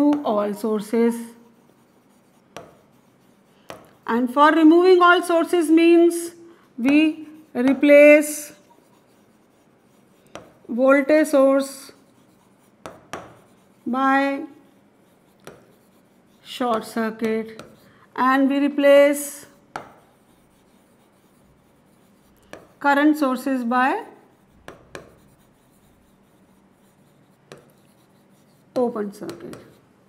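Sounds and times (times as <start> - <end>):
person speaking: 0.0 - 1.9, 4.0 - 12.4, 13.5 - 15.6, 16.3 - 19.6, 27.5 - 29.8
marker writing on whiteboard: 0.0 - 30.0.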